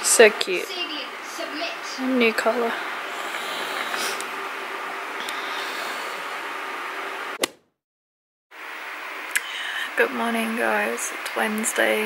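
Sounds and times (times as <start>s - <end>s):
room noise hiss: 8.6s - 12.0s.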